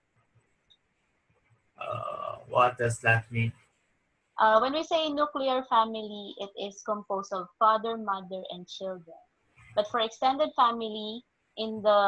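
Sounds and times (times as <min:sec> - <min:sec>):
man speaking hesitantly: 0:01.8 - 0:03.5.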